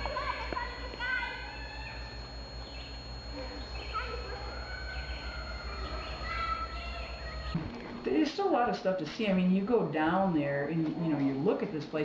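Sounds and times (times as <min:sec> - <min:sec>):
steady low hum: 0:00.0 - 0:12.0
bird chirps: 0:00.9 - 0:07.6.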